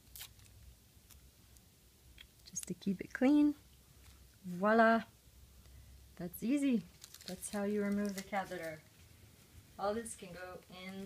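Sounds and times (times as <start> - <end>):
soft rustle: 2.3 - 4.5, 5.5 - 11.0.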